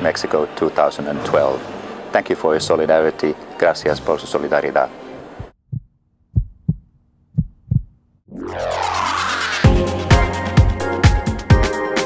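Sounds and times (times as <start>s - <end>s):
deep thumps in heartbeat rhythm: 5.4s - 8.0s.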